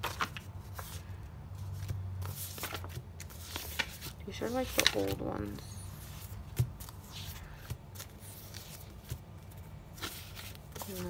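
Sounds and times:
sticker sheets rustling: 0.0s - 11.0s.

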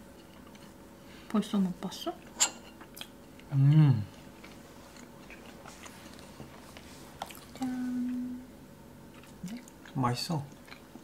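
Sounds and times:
soft chewing: 0.2s - 0.8s, 2.2s - 8.2s, 9.1s - 11.0s.

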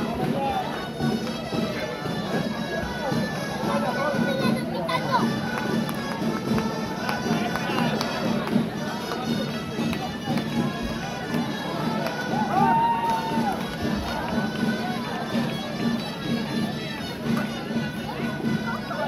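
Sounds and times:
crowd chatter: 0.0s - 19.0s
reedy wind instrument folk tune: 0.0s - 19.0s.

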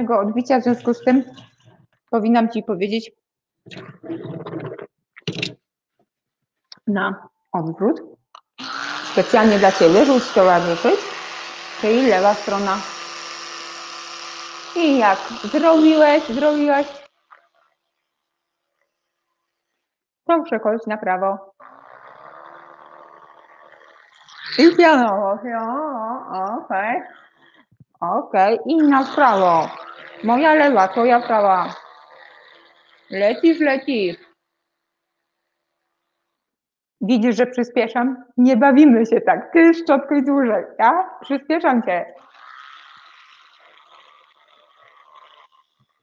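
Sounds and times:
electric toothbrush buzzing: 0.0s - 1.6s, 8.5s - 20.0s, 21.5s - 36.3s, 41.6s - 46.0s.

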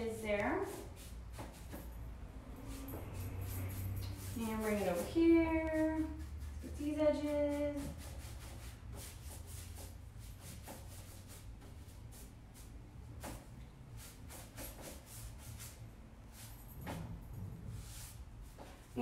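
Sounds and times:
paintbrush strokes on wood: 0.0s - 1.9s, 2.5s - 16.6s, 17.7s - 19.0s.

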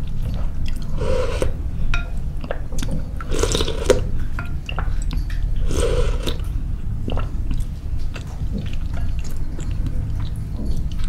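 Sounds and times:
wet chewing: 0.0s - 1.6s, 2.3s - 11.0s
steady low hum: 0.0s - 11.0s.

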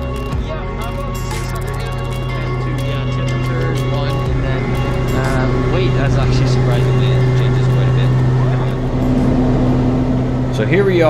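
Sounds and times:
music playing: 0.0s - 11.0s
turboprop engines droning: 0.0s - 11.0s.

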